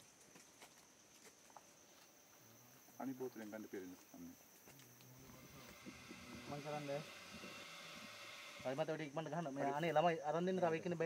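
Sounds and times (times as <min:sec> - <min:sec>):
insects chirring: 0:00.0 - 0:11.0
man speaking: 0:08.6 - 0:11.0.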